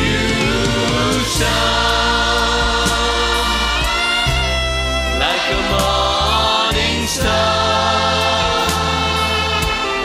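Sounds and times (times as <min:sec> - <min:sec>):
choir singing gospel: 0:00.0 - 0:10.0
live band playing: 0:00.0 - 0:10.0.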